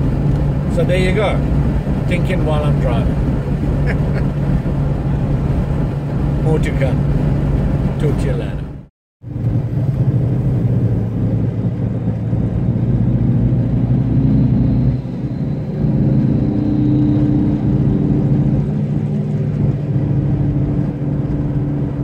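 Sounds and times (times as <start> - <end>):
car engine and road noise: 0.0 - 22.0.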